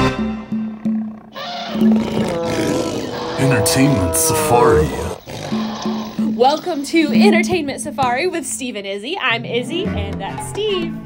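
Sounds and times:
wild animal call: 0.8s - 6.3s.

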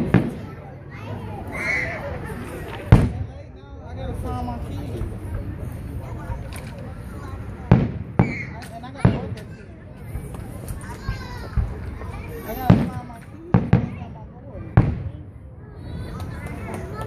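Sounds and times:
firework shells booming: 0.0s - 0.6s, 2.9s - 3.3s, 7.7s - 9.5s, 12.6s - 15.3s.

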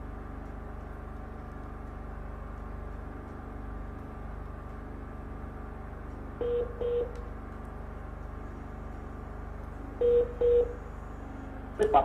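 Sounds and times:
steady low hum: 0.0s - 12.0s
short beeps: 6.4s - 7.1s, 10.0s - 10.8s.

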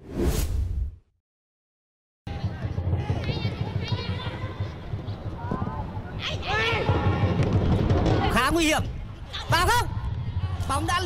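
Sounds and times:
whoosh with deep boom: 0.0s - 1.1s.

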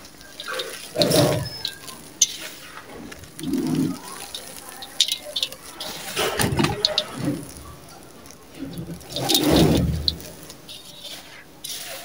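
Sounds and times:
sharp ticks: 0.0s - 11.0s
sand scraping in steel bowl: 0.0s - 12.0s.

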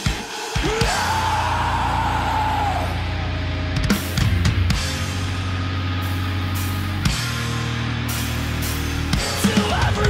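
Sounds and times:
low bass drone: 1.1s - 10.0s.

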